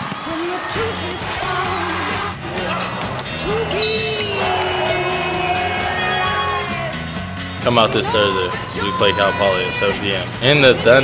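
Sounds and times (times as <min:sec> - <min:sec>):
background music: 0:00.0 - 0:11.0
crowd noise: 0:00.0 - 0:11.0
person shouting: 0:07.9 - 0:10.0.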